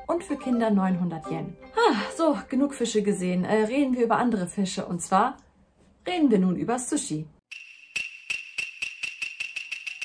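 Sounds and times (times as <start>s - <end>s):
rapid metallic ringing strikes: 7.5s - 10.0s
steady high ringing tone: 7.5s - 10.0s.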